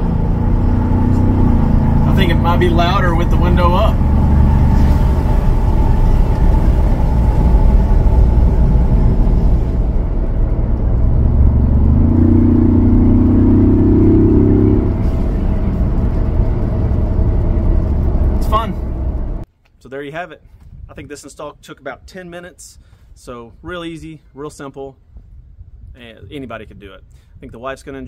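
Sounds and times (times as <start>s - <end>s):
engine accelerating: 0.0s - 19.4s
car engine rumble inside cabin: 0.0s - 19.5s.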